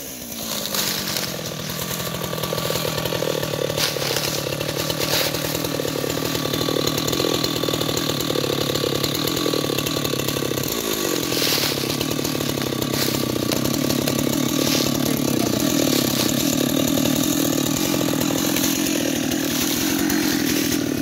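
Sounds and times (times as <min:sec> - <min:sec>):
chainsaw idling: 0:00.0 - 0:21.0.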